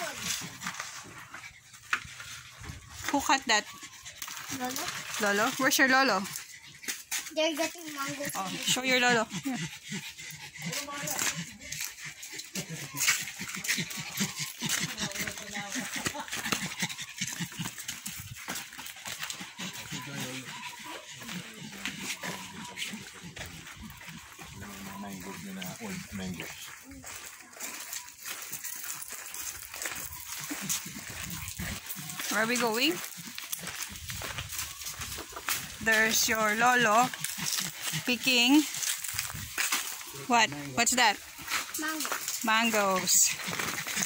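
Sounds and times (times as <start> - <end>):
pug vocalizing: 6.2 - 26.7, 30.0 - 41.4, 42.4 - 44.0
indistinct voices: 35.3 - 44.0.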